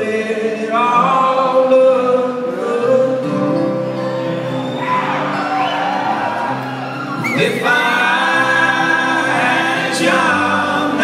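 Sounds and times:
acoustic string band playing: 1.2 - 11.0.

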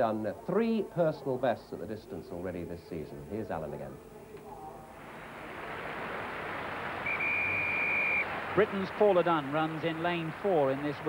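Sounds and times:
stadium crowd: 5.0 - 11.0.

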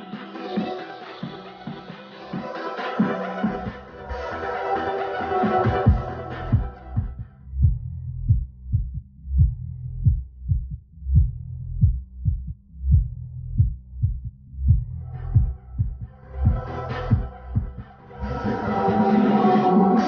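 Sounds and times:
dance music through subwoofer: 0.0 - 9.6, 11.2 - 20.0
deep bass thumps: 5.7 - 17.9.

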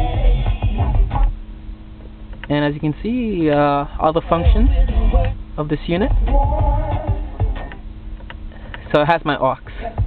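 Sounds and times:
bass-heavy music from car speakers: 0.0 - 10.0.

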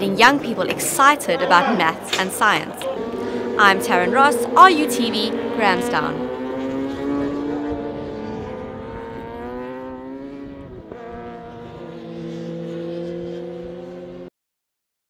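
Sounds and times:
racing motorcycle engines: 0.0 - 14.3.

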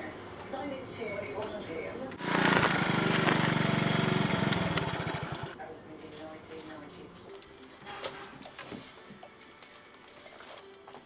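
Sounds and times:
motor scooter engine running: 2.2 - 5.6.

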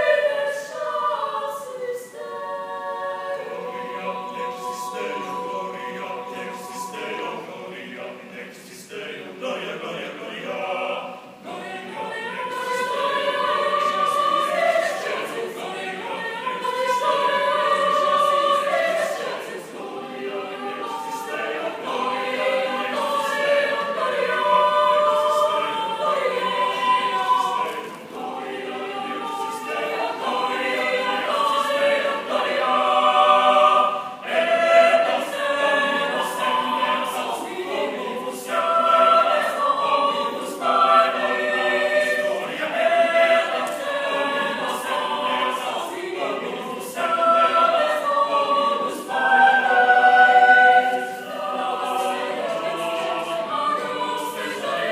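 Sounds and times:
mixed choir singing a cappella: 0.0 - 54.9.

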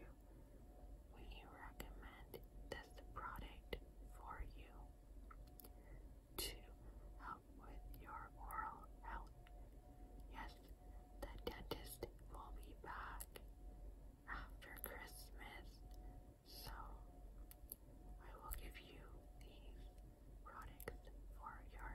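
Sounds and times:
woman whispering: 1.1 - 4.9, 6.4 - 9.4, 10.2 - 13.5, 14.3 - 17.2, 18.2 - 21.9.

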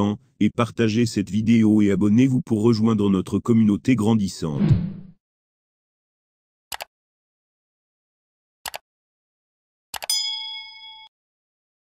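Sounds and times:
bright metallic bell ding: 10.1 - 11.1.

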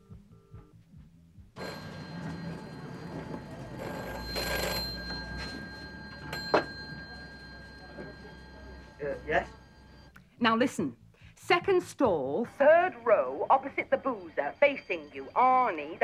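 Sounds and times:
street noise: 1.6 - 10.1
telephone ringing: 1.6 - 10.1.

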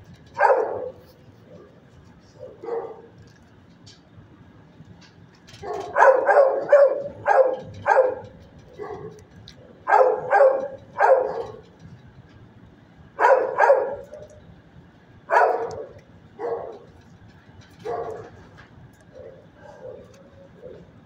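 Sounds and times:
dog barking: 0.4 - 1.7, 2.4 - 3.1, 5.6 - 9.2, 9.8 - 11.6, 13.2 - 14.4, 15.3 - 16.9, 17.8 - 18.4, 19.1 - 20.8.

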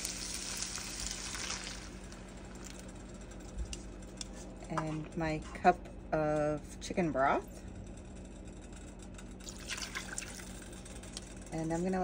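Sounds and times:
food sizzling in a frying pan: 0.0 - 2.8.

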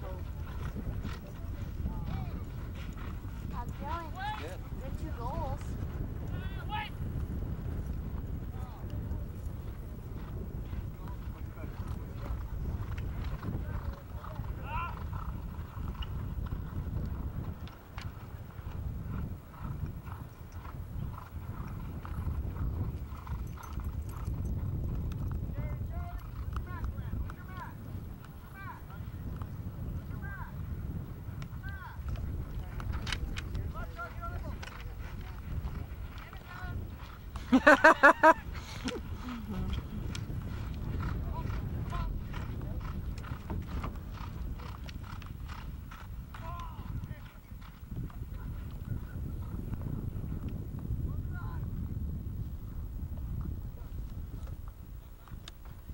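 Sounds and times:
hoofbeats galloping on turf: 0.0 - 55.9
riders shouting: 3.5 - 7.0, 13.5 - 15.2, 46.4 - 47.5.

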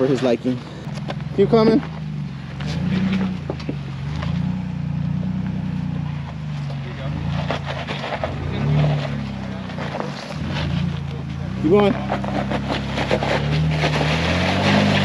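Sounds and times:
truck engine in low gear: 0.0 - 15.0.

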